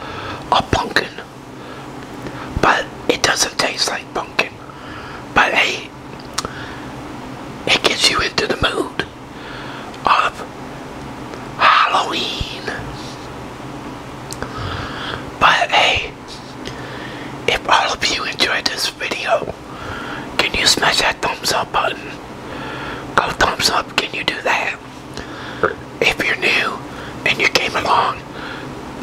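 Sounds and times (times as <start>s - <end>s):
man whispering: 0.5s - 1.3s, 2.5s - 4.6s, 5.3s - 5.9s, 7.7s - 9.1s, 10.0s - 10.5s, 11.6s - 13.2s, 15.4s - 16.7s, 17.5s - 19.6s, 20.4s - 22.2s, 23.2s - 24.8s, 25.6s - 28.3s.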